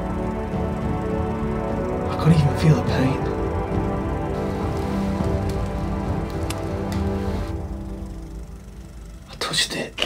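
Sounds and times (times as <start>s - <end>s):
drone-like background music: 0.0s - 10.0s
faint crackling clicks: 4.5s - 7.6s.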